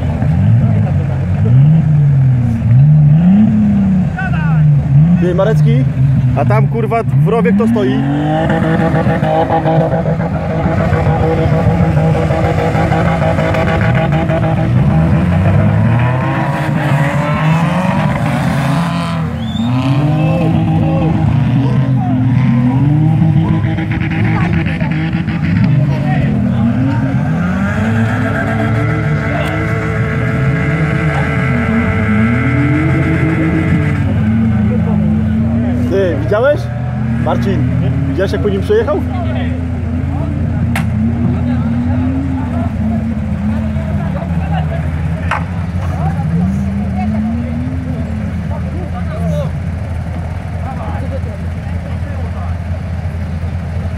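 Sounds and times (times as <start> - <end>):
car engine revving: 0.0 - 53.9.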